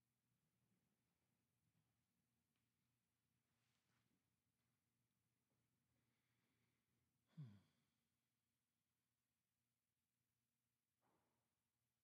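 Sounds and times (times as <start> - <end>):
person sighing: 7.3 - 7.8.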